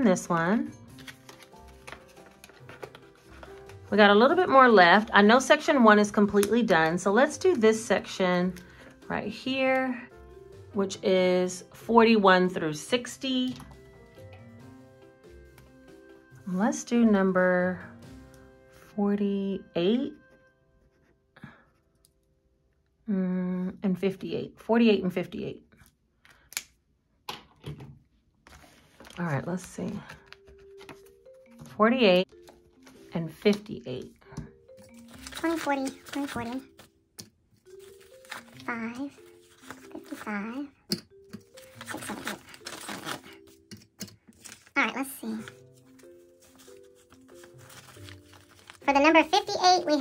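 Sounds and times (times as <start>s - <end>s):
soft background music: 0.0s - 25.8s, 28.4s - 50.0s
paper envelopes clicking and rustling: 0.8s - 5.1s, 28.4s - 34.1s, 34.8s - 40.4s, 41.3s - 49.4s
plastic pen clicks and taps: 6.3s - 6.9s.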